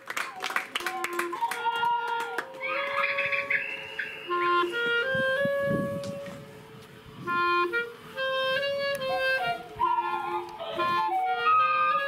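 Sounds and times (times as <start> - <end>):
wind instrument melody: 0.1 - 12.0.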